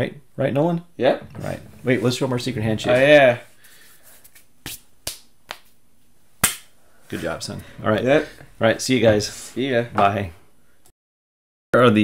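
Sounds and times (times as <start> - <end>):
hands slapping together: 4.2 - 5.8, 6.4 - 6.7.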